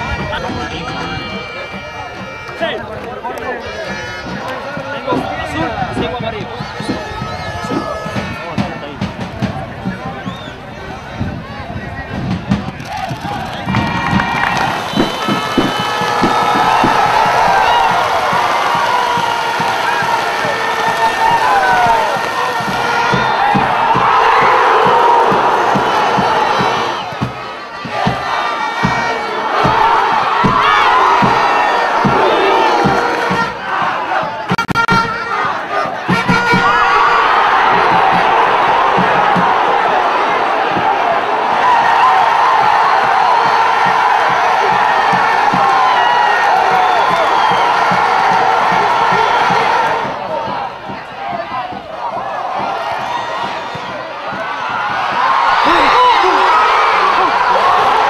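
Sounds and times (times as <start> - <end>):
stadium crowd cheering and shouting: 0.0 - 58.0.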